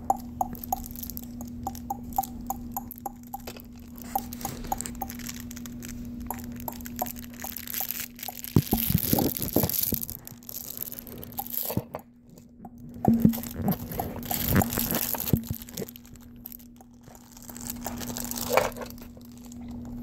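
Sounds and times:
steady low hum: 0.0 - 20.0
fabric rustling and crinkling: 13.1 - 16.4.

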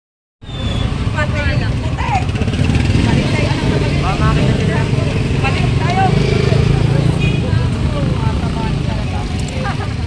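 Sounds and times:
motorcycle and vehicle engines rumbling: 0.4 - 10.0
people talking in crowd: 0.6 - 10.0.

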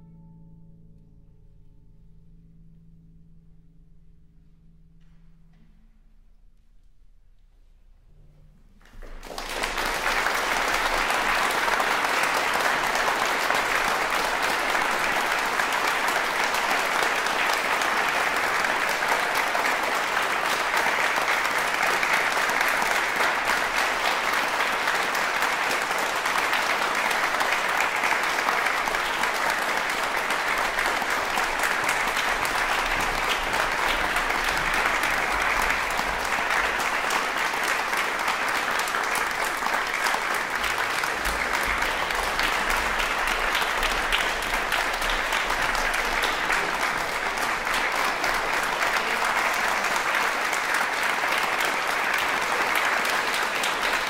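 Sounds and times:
audience applauding: 8.8 - 54.0.

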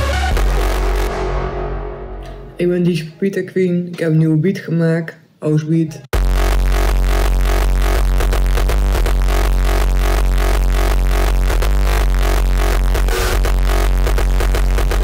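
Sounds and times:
electronic dance music: 0.0 - 2.5, 6.1 - 15.0.

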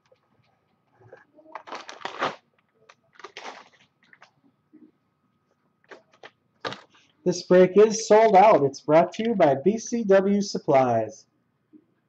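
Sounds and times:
rustling crinkling handling noise: 0.0 - 4.4, 5.5 - 7.2.

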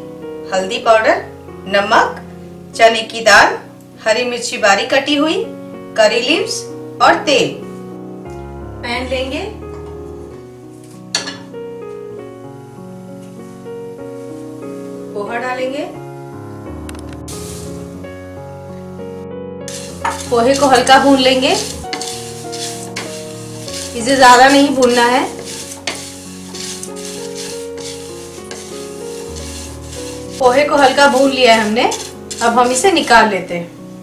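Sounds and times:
metal pan clanking on stove: 11.1 - 11.5
held keyboard music: 16.0 - 33.3
spatula stirring rice flakes in pan: 17.3 - 17.8, 19.7 - 33.3.

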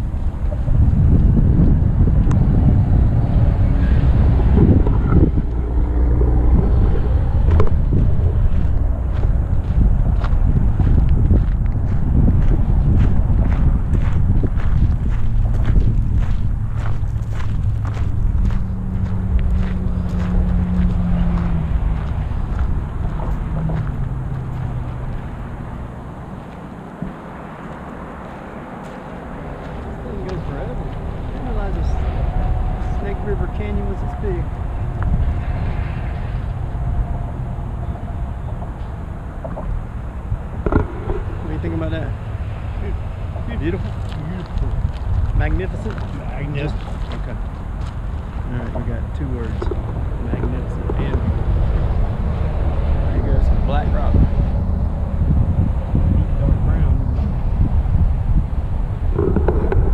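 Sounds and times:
passing vehicle hum: 0.0 - 59.9
road traffic noise: 0.0 - 59.9
wind rumbling on microphone: 0.0 - 59.9
footsteps on gravel: 5.0 - 25.3, 26.4 - 31.9, 43.7 - 48.8.

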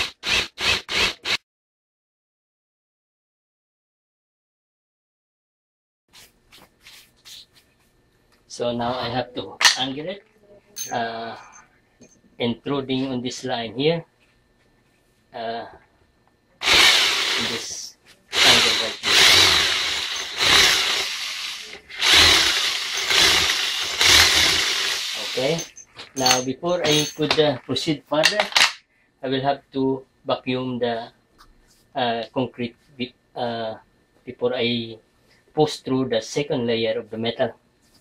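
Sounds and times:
electric drill boring into metal: 0.0 - 1.4, 16.6 - 27.2
faint rustling handling noises: 14.1 - 15.4.

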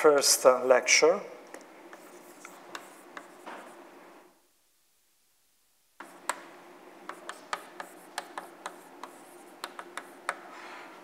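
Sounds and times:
chalk tapping on board: 1.9 - 3.8, 6.0 - 10.5
chalk scratching on blackboard: 1.9 - 3.9, 6.0 - 6.5, 7.1 - 10.5.

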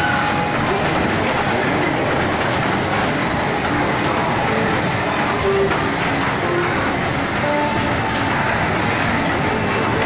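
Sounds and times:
toy train wheels on metal track: 0.0 - 10.0.

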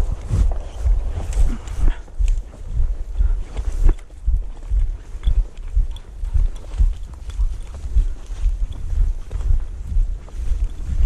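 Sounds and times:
footsteps through dry grass: 0.0 - 11.0.

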